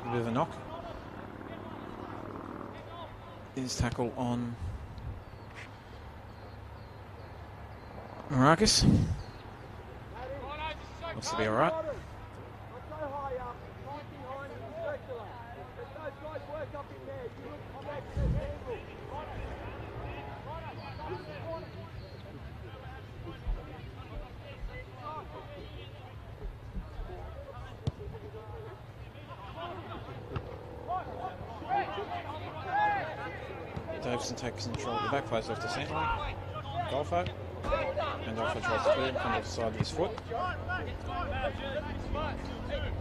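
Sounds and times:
distant shouts and chatter: 0.0s - 43.0s.

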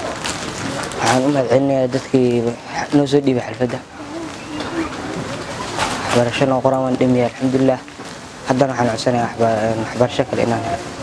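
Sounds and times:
dove cooing: 3.8s - 6.2s.

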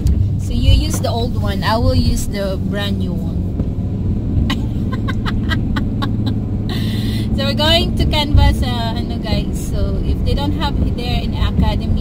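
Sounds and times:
van engine and road drone: 0.0s - 12.0s.

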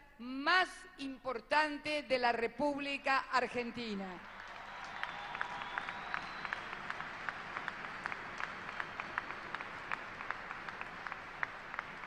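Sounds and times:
audience clapping: 4.1s - 12.0s.

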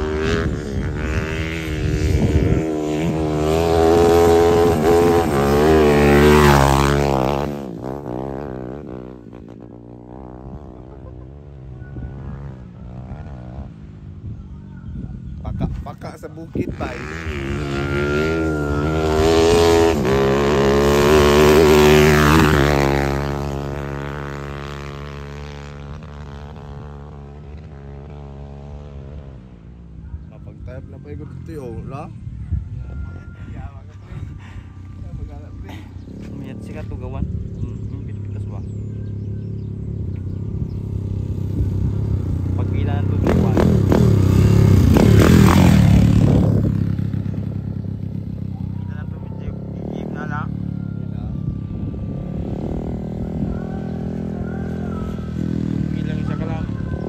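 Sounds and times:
small motorcycle engine revving: 0.0s - 13.9s, 16.5s - 29.6s, 35.6s - 57.0s.

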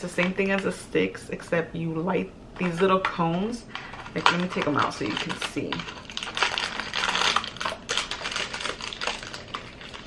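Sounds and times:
small clicks and packaging rustles: 3.7s - 10.0s.

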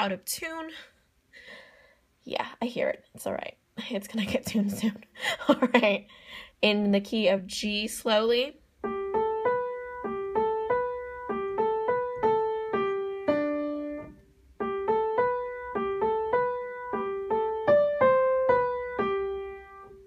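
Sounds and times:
out-of-tune piano playing: 8.8s - 20.0s.

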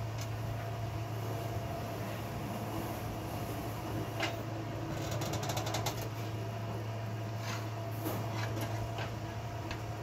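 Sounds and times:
workshop machine humming: 0.0s - 10.0s.

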